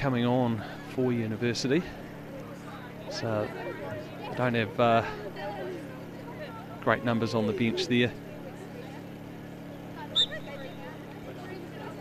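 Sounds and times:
distant voices of players: 0.0s - 12.0s
steady low hum: 0.0s - 12.0s.

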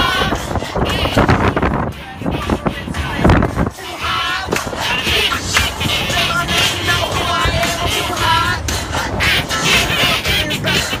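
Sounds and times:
loud music: 0.0s - 11.0s.

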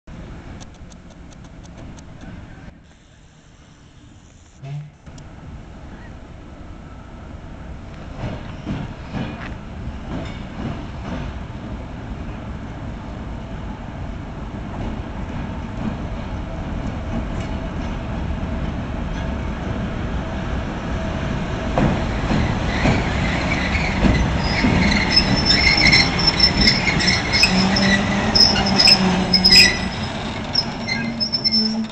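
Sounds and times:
diesel locomotive engine: 0.1s - 31.9s
wheels knocking and squealing on rails: 5.8s - 11.8s, 21.6s - 31.9s.

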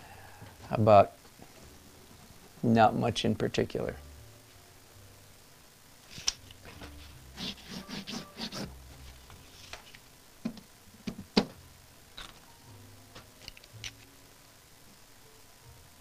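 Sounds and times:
pen scratching on paper: 7.4s - 8.7s.

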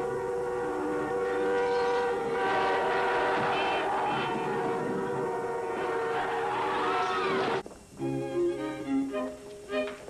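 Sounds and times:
car horns blaring: 0.0s - 7.6s.

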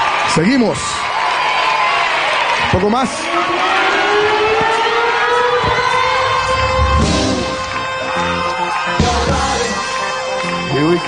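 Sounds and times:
concert crowd cheering: 0.0s - 11.0s.

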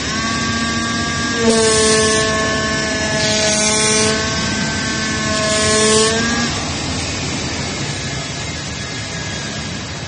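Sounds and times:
cutting hiss: 0.0s - 8.5s
cutting machine buzzing hum: 0.0s - 10.0s
steady rushing noise: 0.0s - 10.0s.

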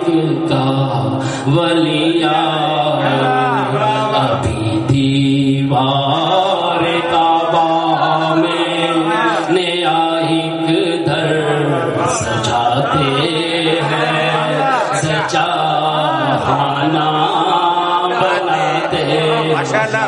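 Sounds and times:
man chanting into a microphone: 0.0s - 20.0s.

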